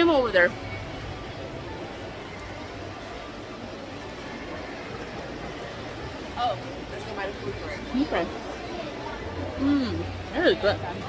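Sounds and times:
indoor crowd din: 0.0 - 11.0.

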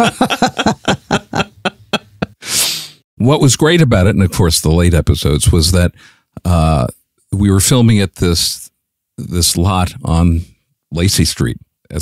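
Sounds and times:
people laughing: 0.0 - 2.5.

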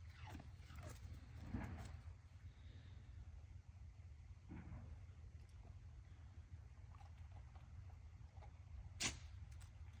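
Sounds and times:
dog whining: 0.0 - 1.0.

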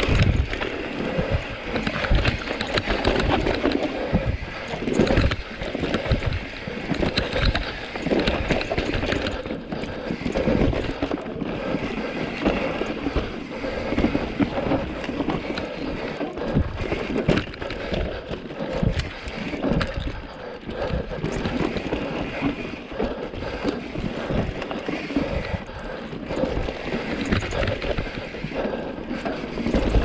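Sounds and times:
bike clattering over bumps: 0.0 - 30.0
bike tyres rolling over dirt: 0.0 - 30.0.

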